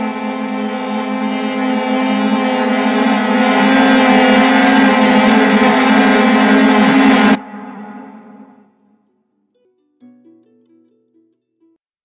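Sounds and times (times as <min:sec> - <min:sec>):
string section sustained chord: 0:00.0 - 0:09.2.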